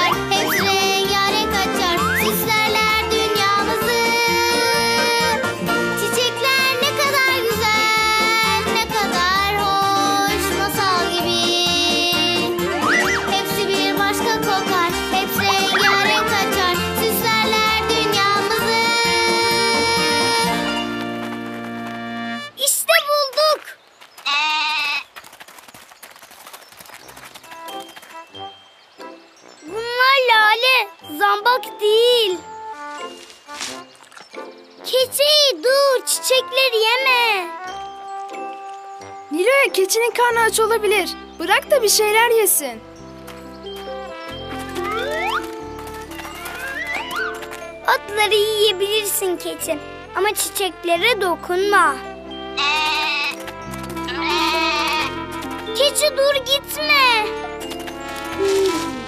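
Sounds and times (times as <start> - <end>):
background music: 0.0 - 22.9, 27.2 - 59.0
baby goat bleating: 15.4 - 16.4, 24.2 - 25.1, 52.5 - 53.4, 54.0 - 55.3.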